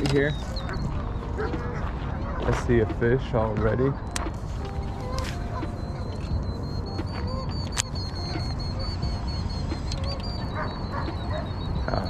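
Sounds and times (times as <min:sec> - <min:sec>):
waterfowl honking: 0:00.0 - 0:12.0.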